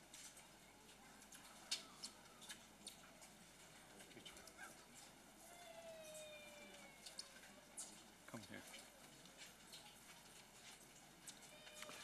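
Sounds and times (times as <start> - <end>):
faint crowd ambience: 0.0 - 12.0.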